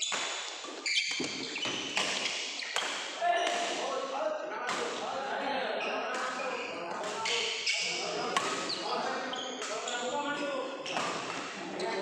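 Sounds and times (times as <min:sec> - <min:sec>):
shoes squeaking on court floor: 0:00.0 - 0:03.6, 0:05.8 - 0:12.0
racket hitting shuttlecock: 0:00.0 - 0:03.8, 0:04.7 - 0:05.0, 0:06.1 - 0:08.8, 0:10.9 - 0:11.6.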